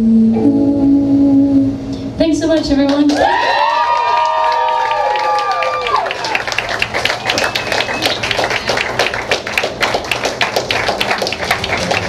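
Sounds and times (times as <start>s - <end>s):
audience applauding: 2.9s - 12.0s.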